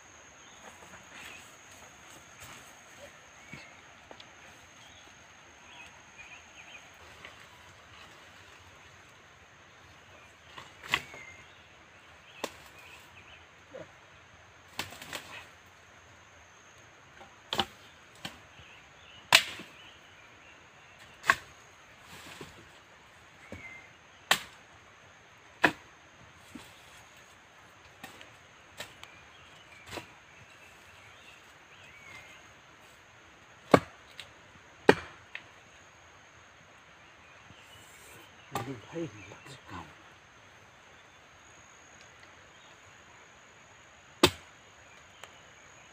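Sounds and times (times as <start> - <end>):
knife chopping into wood: 33.7 - 34.0, 34.8 - 35.2, 44.2 - 44.4.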